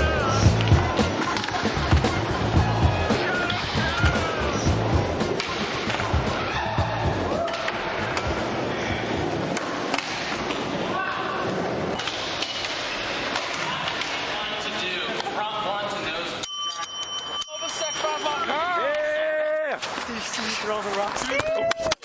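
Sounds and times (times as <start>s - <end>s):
voices calling out: 0.0s - 9.3s
skateboard wheels rolling: 0.0s - 14.3s.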